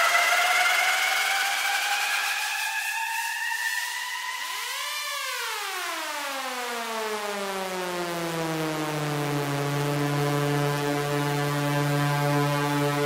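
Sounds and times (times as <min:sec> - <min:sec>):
synthesizer tone gliding down: 0:08.8 - 0:13.0.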